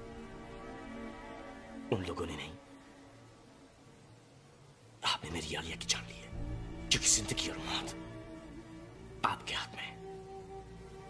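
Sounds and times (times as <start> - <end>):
soft film score held notes: 0.0 - 11.0
whispered voice: 6.9 - 8.0, 9.2 - 10.0.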